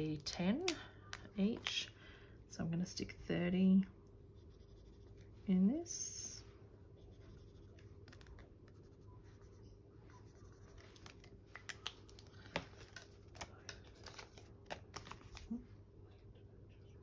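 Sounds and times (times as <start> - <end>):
marker scratching on cardboard: 4.4 - 5.2, 7.0 - 9.6
paper rustling: 10.4 - 15.6.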